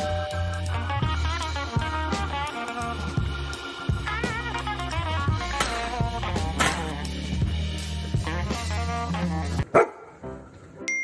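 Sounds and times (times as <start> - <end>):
background music: 0.0 - 11.0
dog barking: 9.6 - 10.2.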